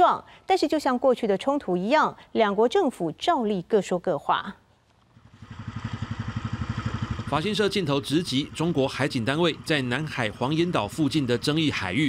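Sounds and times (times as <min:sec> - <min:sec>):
boat engine running: 0:05.2 - 0:12.0.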